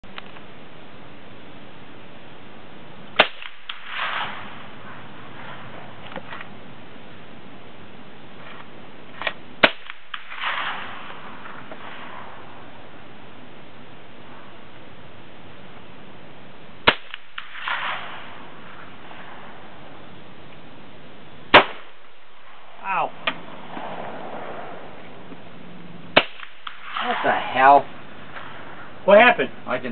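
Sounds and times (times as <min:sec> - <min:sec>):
sharp rifle shot: 0:03.2 - 0:06.3, 0:09.2 - 0:12.6, 0:16.8 - 0:19.5, 0:21.5 - 0:22.2, 0:26.1 - 0:28.9.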